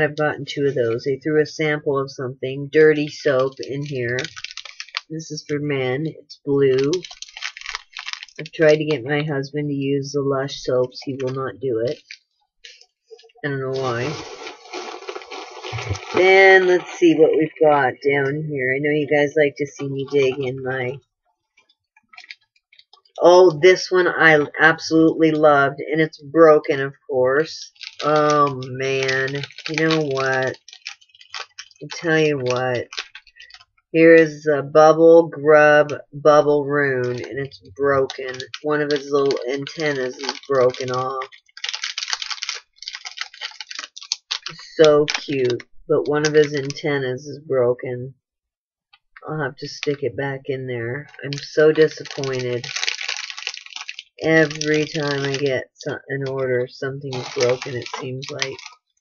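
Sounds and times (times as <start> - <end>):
packing material rustling: 3.0 - 5.1, 6.6 - 9.2, 10.9 - 17.2, 21.6 - 23.3, 27.6 - 33.8, 37.0 - 45.6, 46.2 - 46.8, 51.3 - 55.7, 57.1 - 59.0.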